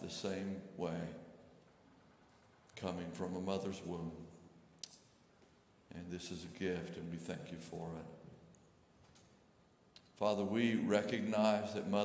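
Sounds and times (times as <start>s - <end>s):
man speaking: 0.0s - 1.4s, 2.8s - 4.4s, 5.9s - 8.3s, 10.2s - 12.0s.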